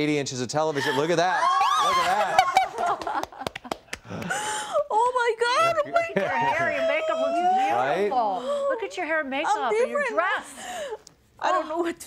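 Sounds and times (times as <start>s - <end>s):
hand claps: 2.8s - 4.4s.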